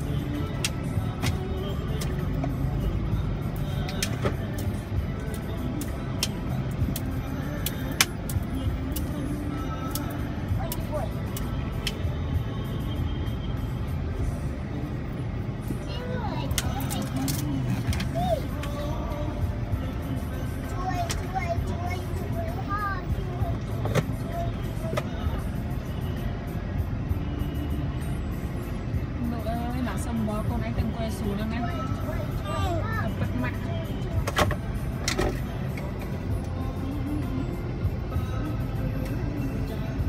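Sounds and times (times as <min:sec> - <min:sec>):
car engines rumbling in traffic: 0:00.0 - 0:40.0.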